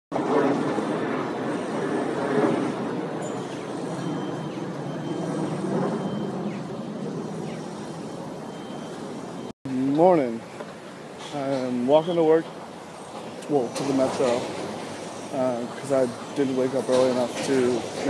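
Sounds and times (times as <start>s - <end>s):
city street traffic: 0.1s - 18.0s.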